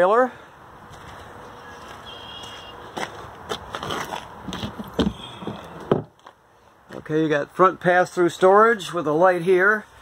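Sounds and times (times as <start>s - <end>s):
footsteps on pavement: 0.8s - 7.1s.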